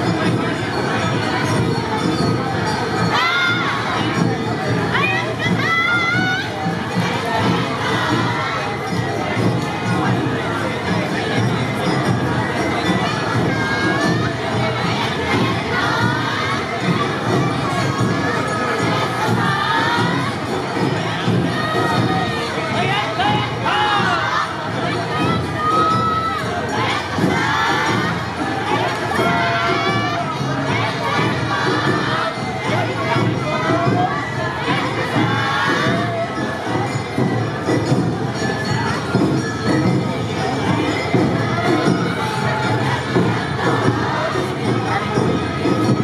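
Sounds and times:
dancers shouting high-pitched calls: 0.0s - 9.5s, 12.6s - 37.9s
crowd noise: 0.0s - 46.0s.

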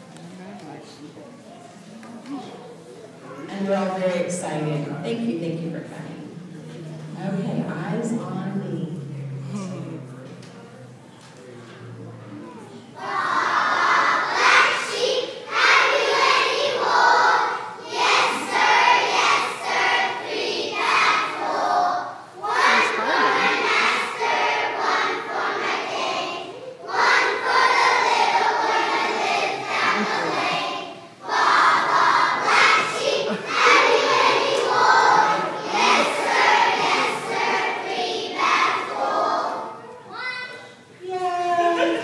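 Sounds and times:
young children shouting: 22.4s - 42.0s.

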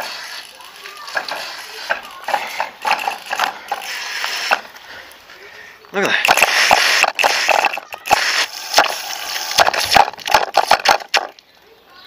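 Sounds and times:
water spurting in pulses: 0.0s - 5.2s.

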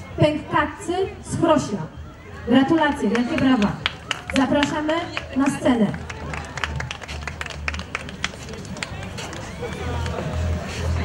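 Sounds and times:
scattered applause: 2.7s - 11.0s.

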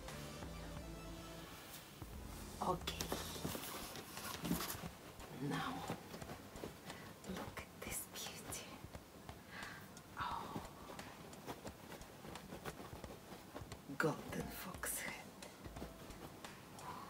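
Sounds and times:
fur pelts clicking and rustling: 2.7s - 17.0s
woman murmuring and whispering: 5.2s - 6.4s, 7.0s - 9.0s, 10.1s - 11.3s, 13.8s - 15.5s.

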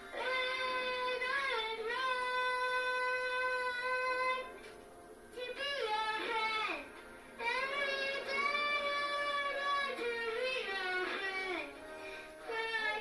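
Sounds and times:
girl singing into toy microphone: 0.1s - 4.5s, 5.4s - 11.8s, 12.4s - 13.0s.

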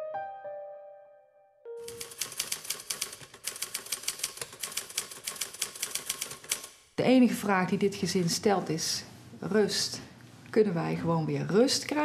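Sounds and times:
piano note: 0.0s - 2.0s
typewriter keys clacking: 1.8s - 6.8s.

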